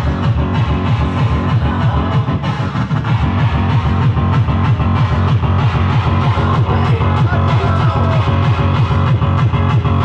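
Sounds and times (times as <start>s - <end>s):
fast bass-heavy beat: 0.0s - 10.0s
live band playing loud music: 0.0s - 10.0s.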